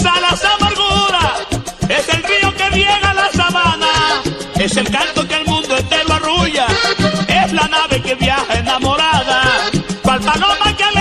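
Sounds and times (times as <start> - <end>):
bass and percussion beat: 0.0 - 11.0
button accordion melody: 0.0 - 11.0.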